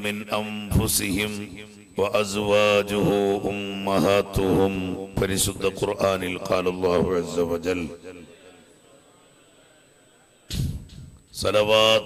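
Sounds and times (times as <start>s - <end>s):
room hiss: 0.0s - 12.0s
short noisy thump: 10.5s - 11.1s.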